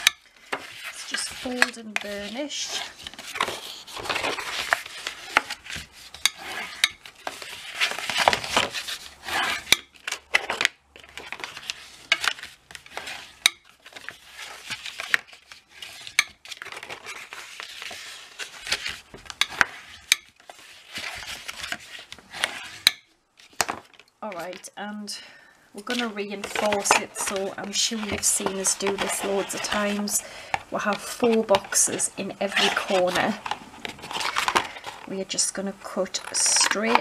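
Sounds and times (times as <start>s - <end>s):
bone folder scraping paper: 0.3s - 22.9s, 25.8s - 30.2s, 30.8s - 35.1s.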